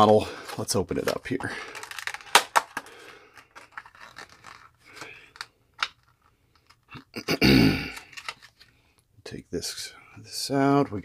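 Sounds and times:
plastic packaging crackling: 0.0 - 7.0, 7.9 - 8.8
person clearing throat: 7.1 - 8.0.

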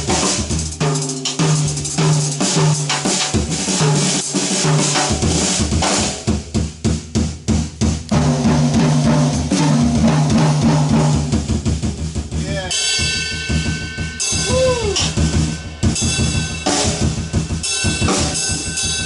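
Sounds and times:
drum kit played busily: 0.0 - 19.0.

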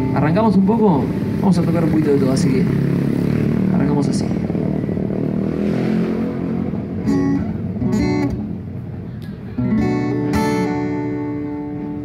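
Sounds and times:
acoustic guitar playing: 0.0 - 1.6, 6.8 - 12.0
strummed guitar chord ringing: 9.6 - 12.0.

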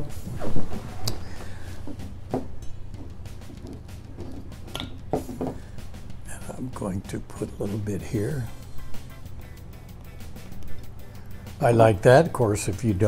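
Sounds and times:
steady low hum: 0.0 - 13.0
objects knocking on wooden table: 1.8 - 5.6.

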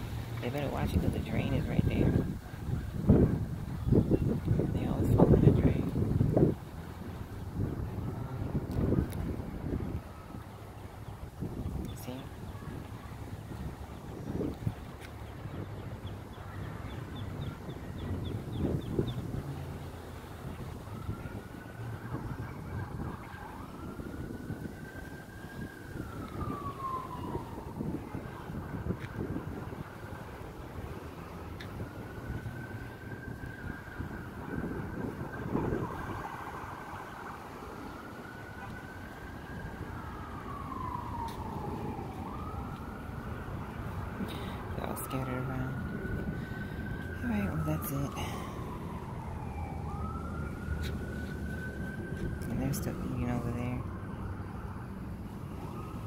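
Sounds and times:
siren wailing: 0.5 - 56.0.

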